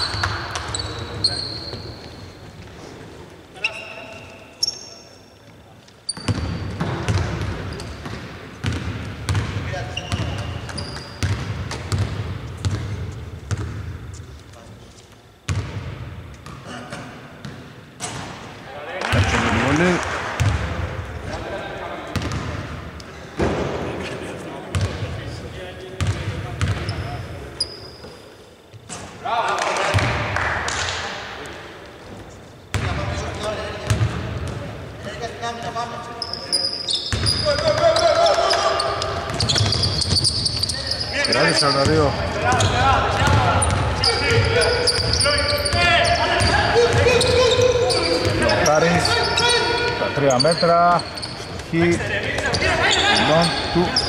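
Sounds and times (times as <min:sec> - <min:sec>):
players shouting: 0:40.9 - 0:50.2.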